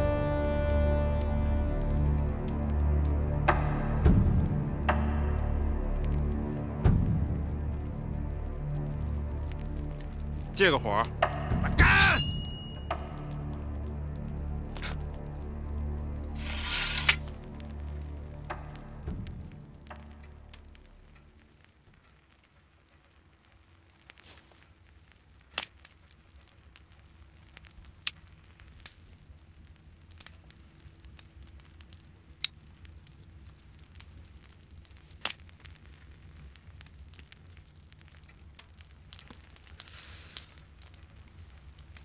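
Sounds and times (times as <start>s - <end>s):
low fire rumble: 0.0s - 42.0s
sharp fire snaps: 0.0s - 42.0s.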